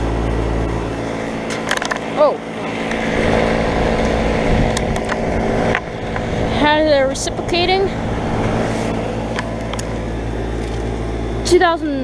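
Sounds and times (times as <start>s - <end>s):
compressor low hum: 0.0s - 12.0s
outdoor fan rushing: 0.0s - 12.0s.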